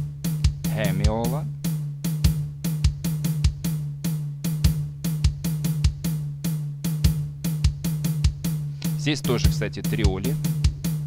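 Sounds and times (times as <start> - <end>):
drum loop: 0.0 - 11.0
presenter talking: 9.0 - 10.4.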